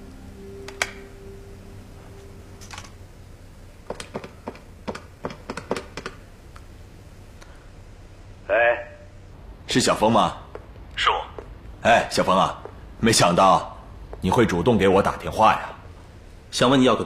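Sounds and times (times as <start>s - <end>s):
low held music note: 0.0s - 3.6s.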